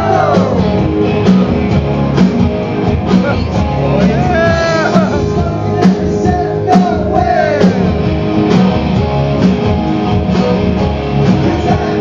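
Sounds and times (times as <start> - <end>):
drums: 0.0 - 12.0
electric guitars strumming: 0.0 - 12.0.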